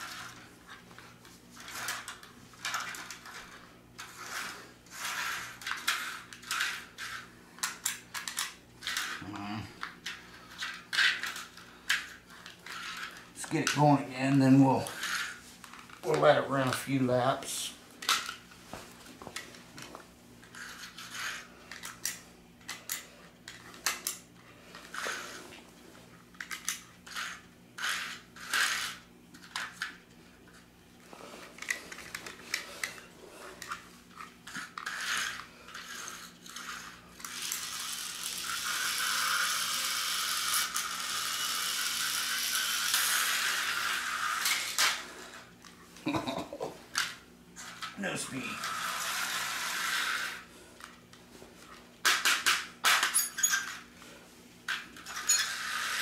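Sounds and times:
plastic slot cars clicking: 4.0 - 13.8, 26.4 - 30.0, 34.5 - 45.0
slot car motor whirring: 34.5 - 44.8, 48.5 - 50.5.

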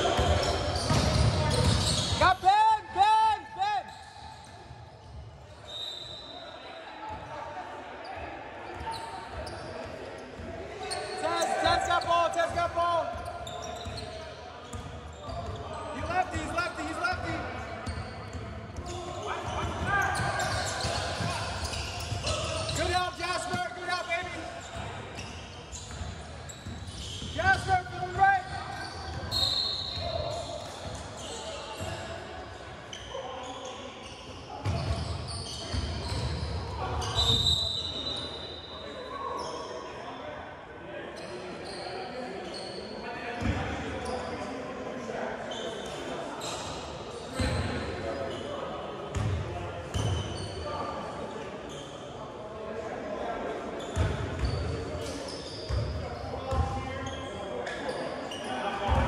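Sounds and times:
players shouting: 10.8 - 13.6, 19.2 - 24.6.

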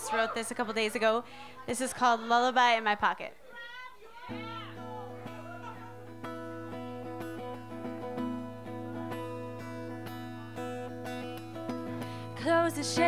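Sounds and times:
acoustic guitar plucked notes: 4.3 - 13.0.

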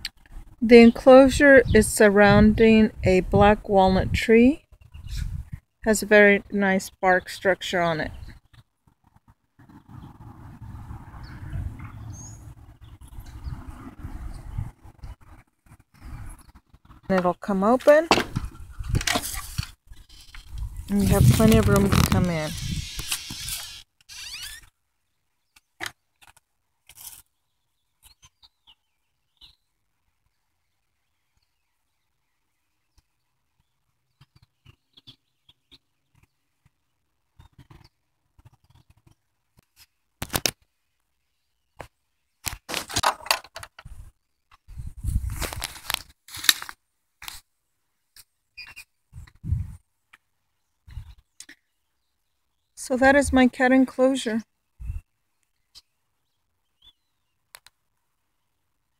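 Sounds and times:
footsteps in dry grass: 44.7 - 47.5.

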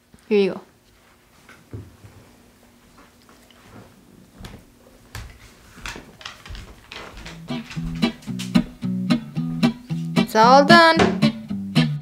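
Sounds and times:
guitar background music: 7.3 - 12.0.

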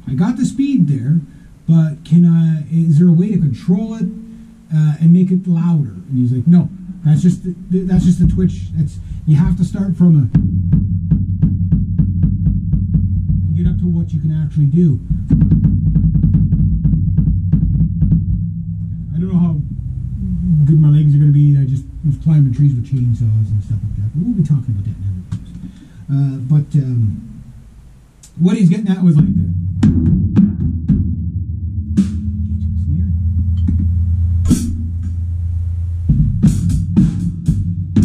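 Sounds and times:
fast bass drum strokes: 0.0 - 38.0
cymbal crash: 18.1 - 24.2, 31.8 - 37.9
drum stick hits: 29.2 - 35.3.

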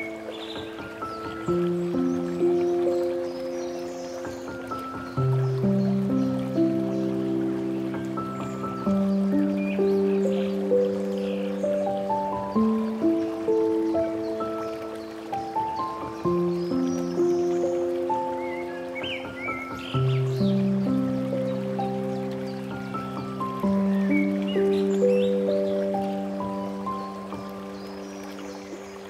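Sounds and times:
gentle solo piano: 0.0 - 29.0.

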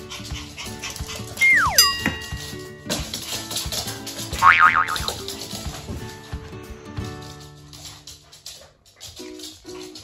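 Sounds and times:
background music: 0.0 - 10.0
wavering squeak-like tone: 1.4 - 2.1.

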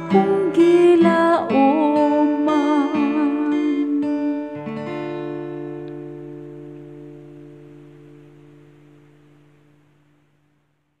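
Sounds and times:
guitar chord ringing out: 0.0 - 10.5.

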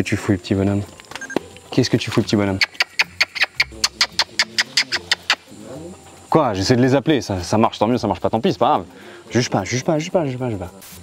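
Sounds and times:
person clicking with mouth: 2.6 - 5.5.

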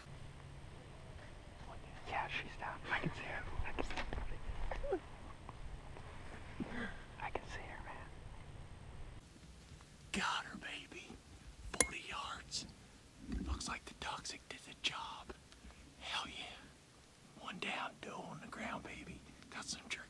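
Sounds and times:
man whispering: 1.6 - 4.4, 6.7 - 8.2, 10.1 - 11.2, 11.8 - 12.8, 13.4 - 15.4, 16.0 - 20.0.

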